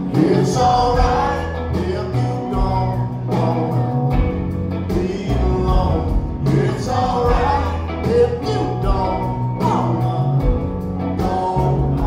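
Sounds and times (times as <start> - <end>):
bass guitar: 0.0 - 12.0
electric guitars: 0.0 - 12.0.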